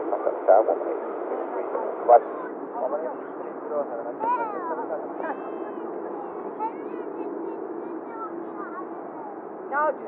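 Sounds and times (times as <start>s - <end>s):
radio hiss: 0.0s - 2.2s
faint broken radio voices: 0.0s - 10.0s.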